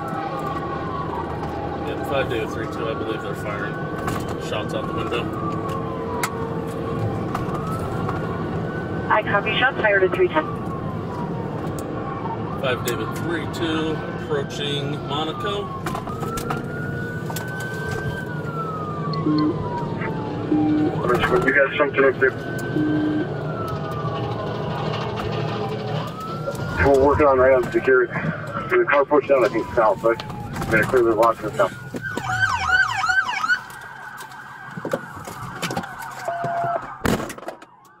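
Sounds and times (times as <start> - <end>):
car engine and road noise: 0.0 - 38.0
police siren wailing: 0.0 - 38.0.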